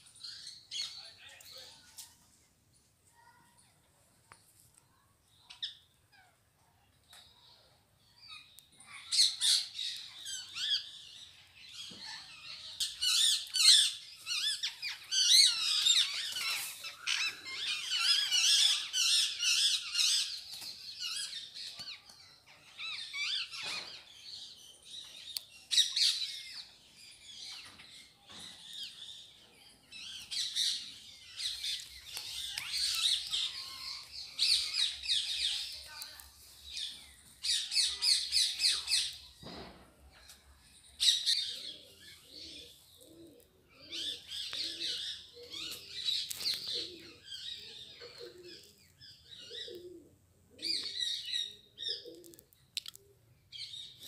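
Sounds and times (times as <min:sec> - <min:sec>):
small birds chirping and squawking: 0:00.0 - 0:02.2, 0:04.7 - 0:54.0.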